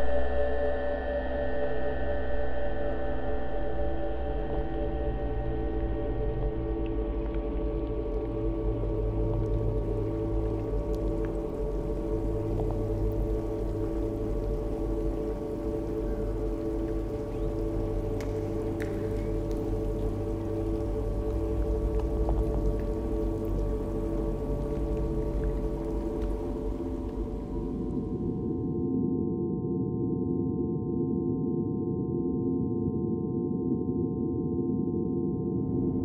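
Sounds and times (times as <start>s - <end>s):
sustained drone tones: 0.0s - 28.6s
low hum: 0.0s - 28.9s
faint clicks: 16.1s - 24.1s.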